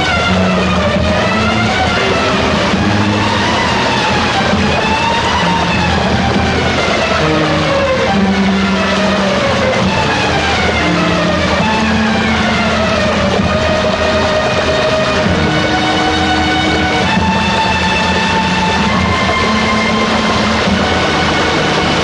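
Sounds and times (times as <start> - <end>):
dramatic film score: 0.0 - 22.0
floodwater rushing through rapids: 0.0 - 22.0.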